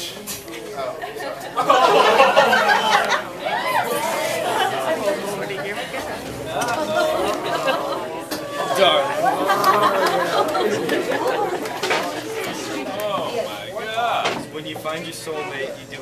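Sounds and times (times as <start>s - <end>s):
audience chatter: 0.0s - 16.0s.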